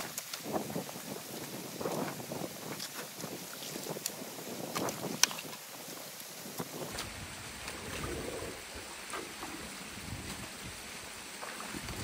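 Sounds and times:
water rushing and splashing: 0:00.0 - 0:12.0.

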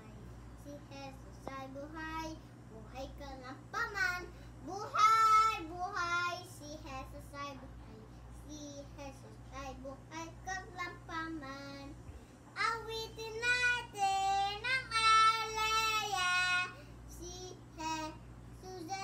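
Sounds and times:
young boy singing: 0:00.0 - 0:19.0.

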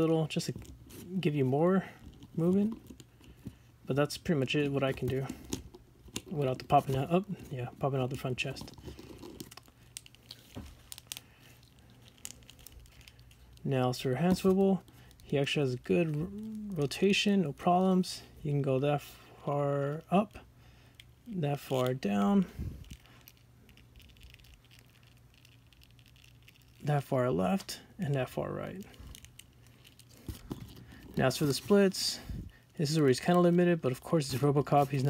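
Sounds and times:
toy handling noise: 0:21.0 - 0:35.0.

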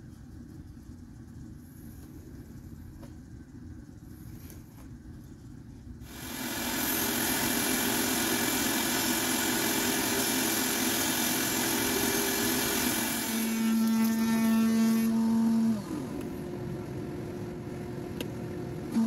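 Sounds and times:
pitched hum: 0:00.0 - 0:19.0
bandsaw cutting wood: 0:06.1 - 0:16.3.

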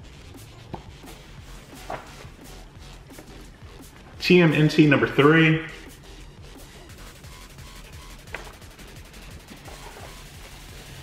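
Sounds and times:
paper rustling: 0:01.1 - 0:02.4, 0:08.3 - 0:08.7, 0:09.6 - 0:10.6.

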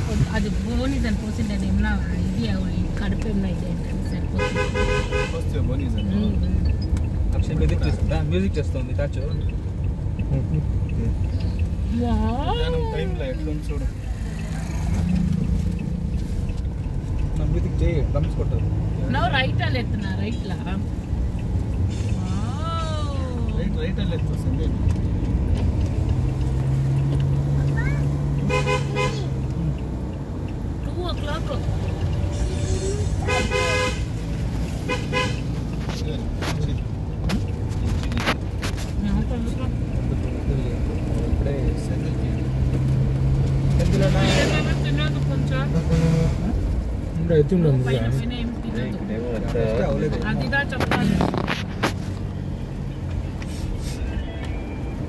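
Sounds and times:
road noise: 0:00.0 - 0:55.0
vehicle engine rumble: 0:00.0 - 0:55.0
car horn honking: 0:04.4 - 0:05.6, 0:28.4 - 0:29.6, 0:33.1 - 0:35.6.

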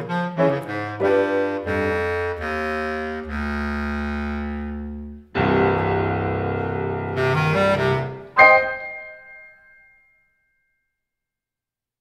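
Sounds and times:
high piano notes lingering: 0:05.2 - 0:10.2
piano chord ringing: 0:05.4 - 0:10.2.

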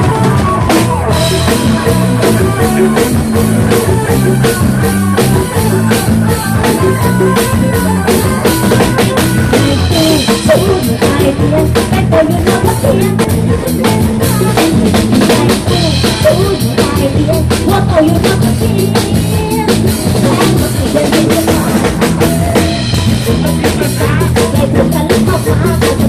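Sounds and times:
drum kit played hard: 0:00.0 - 0:26.0
live band music: 0:00.0 - 0:26.0
steady bass line: 0:00.0 - 0:26.0.

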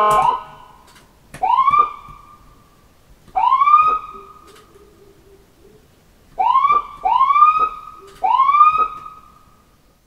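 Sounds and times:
ambulance siren whoops: 0:00.0 - 0:00.8, 0:01.4 - 0:02.4, 0:03.4 - 0:04.4, 0:06.4 - 0:09.3.

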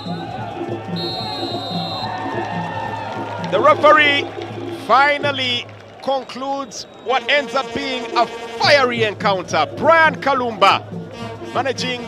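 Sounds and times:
background music with beat: 0:00.0 - 0:12.0
referee whistle blast: 0:00.9 - 0:02.4, 0:06.0 - 0:08.9.

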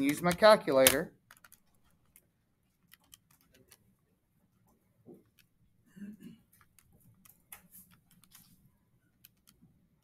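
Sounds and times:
calculator buttons clicking: 0:00.0 - 0:01.6.

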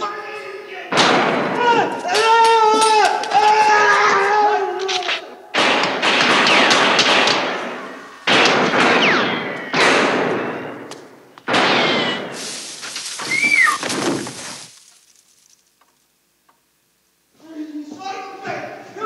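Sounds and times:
echoing gunshots over speakers: 0:00.9 - 0:01.9, 0:05.5 - 0:12.4.

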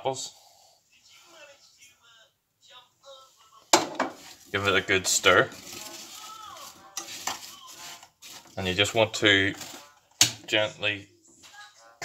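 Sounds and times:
spoon stirring in saucepan: 0:03.7 - 0:10.6.

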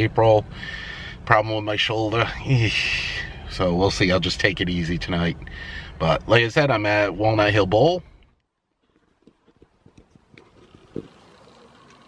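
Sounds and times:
faint steady hush: 0:00.1 - 0:06.4
faint rubbing and small knocks: 0:08.0 - 0:12.0.

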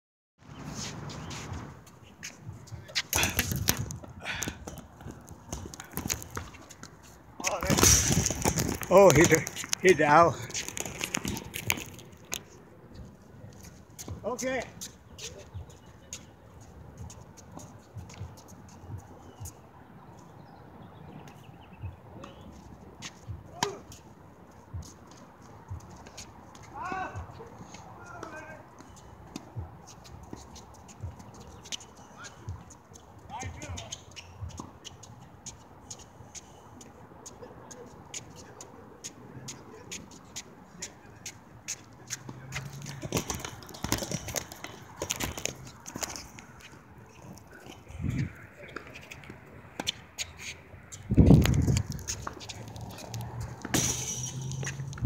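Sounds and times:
player shouting: 0:26.7 - 0:27.3
running footsteps: 0:41.2 - 0:50.0.

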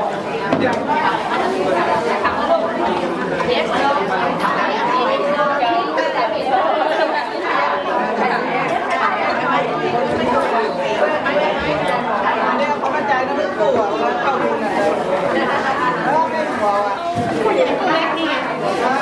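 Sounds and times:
crowd conversation: 0:00.0 - 0:19.0.

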